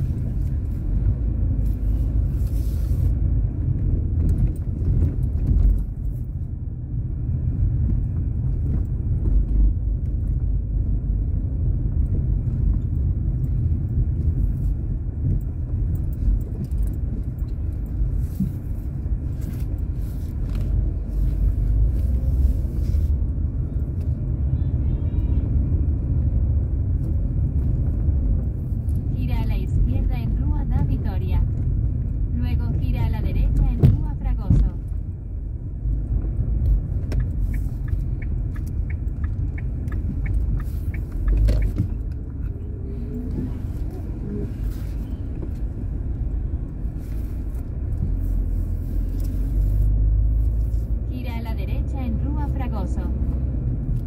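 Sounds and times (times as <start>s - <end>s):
car engine and tyres rumbling: 0.0s - 54.0s
person's voice: 32.4s - 34.8s.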